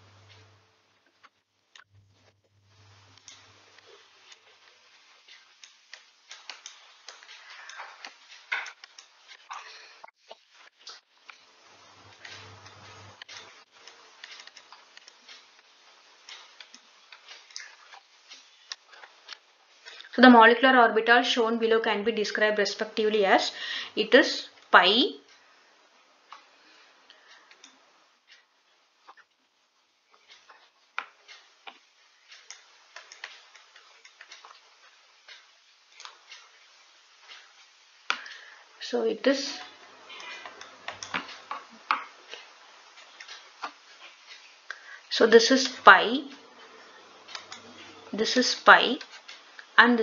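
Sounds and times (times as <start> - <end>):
low background hiss: 0.0 - 50.0
small clicks and taps: 3.1 - 11.4, 30.1 - 38.5, 39.6 - 44.8.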